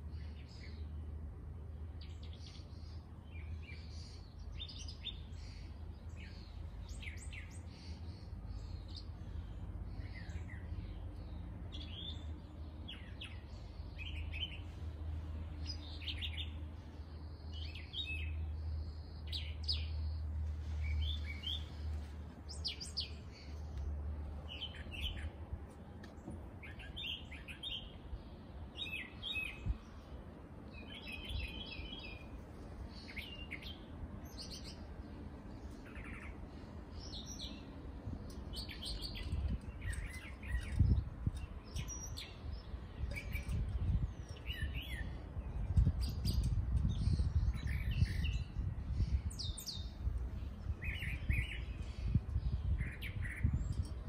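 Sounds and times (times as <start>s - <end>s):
songbirds chirping and singing: 0.0s - 54.0s.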